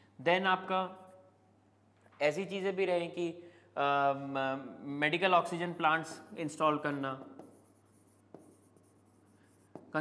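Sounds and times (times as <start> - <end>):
pen tapping on a display: 7.2 - 7.6.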